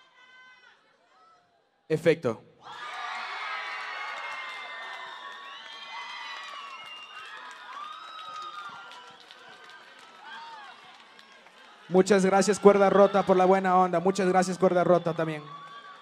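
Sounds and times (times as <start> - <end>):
crowd cheering and shouting: 2.6 - 16.0.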